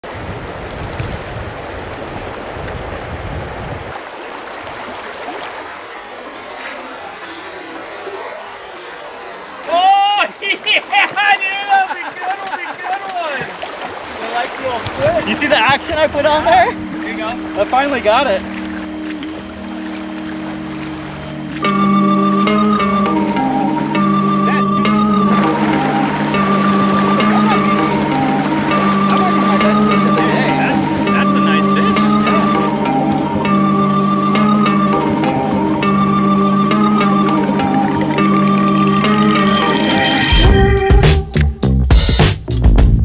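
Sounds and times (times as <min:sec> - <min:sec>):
stream running over rocks: 0:00.0 - 0:22.6, 0:25.2 - 0:32.7
man laughing: 0:10.4 - 0:13.1, 0:27.0 - 0:28.1
music of held notes: 0:15.2 - 0:41.5
full music chord: 0:16.1 - 0:40.9.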